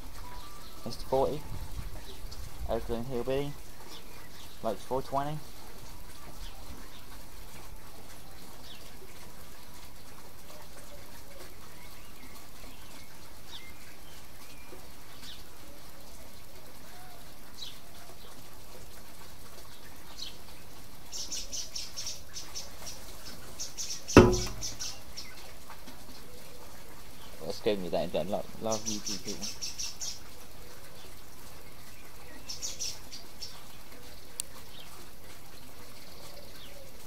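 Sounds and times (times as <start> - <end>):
birds chirping: 19.7 - 25.6
sharp knock: 24.2 - 24.9.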